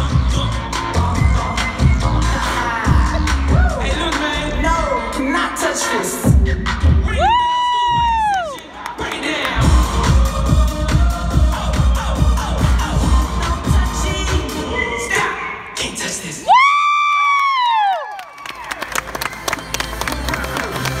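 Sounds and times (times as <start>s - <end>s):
dance music with heavy bass beat: 0.0s - 8.3s, 9.6s - 15.3s
audience clapping and cheering: 7.0s - 9.9s, 16.5s - 21.0s.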